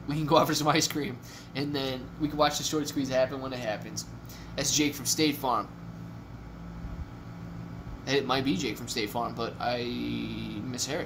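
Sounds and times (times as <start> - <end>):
low room tone hum: 0.0 - 11.0.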